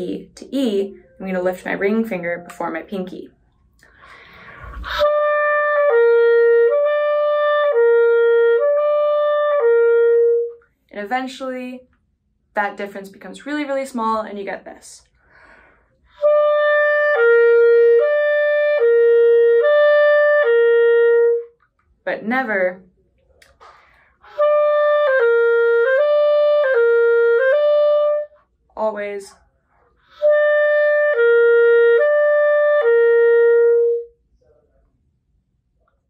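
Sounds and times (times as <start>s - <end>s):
faint breath: 3.8s - 5.0s, 15.1s - 16.1s, 23.6s - 24.2s.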